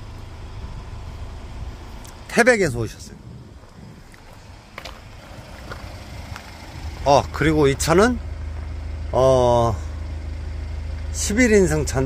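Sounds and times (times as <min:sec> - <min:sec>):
wind rumbling on microphone: 0:00.0 - 0:07.3.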